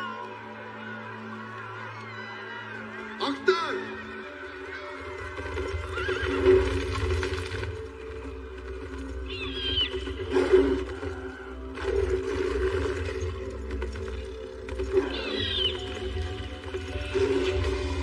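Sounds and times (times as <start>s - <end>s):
dramatic film score: 0.0s - 18.0s.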